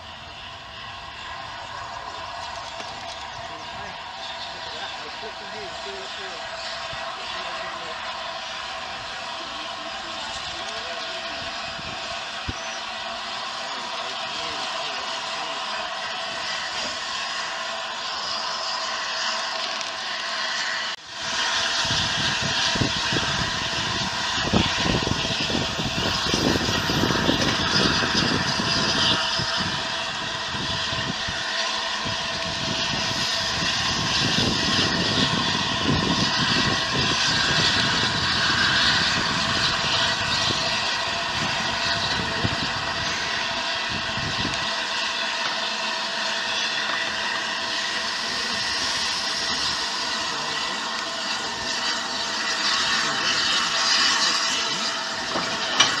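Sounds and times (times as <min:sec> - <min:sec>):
engine and wheels rumbling: 0:00.0 - 0:56.0
steam hissing: 0:00.0 - 0:56.0.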